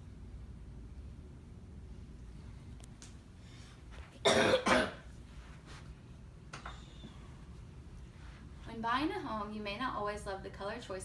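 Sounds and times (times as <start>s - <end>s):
person coughing: 4.2s - 5.1s.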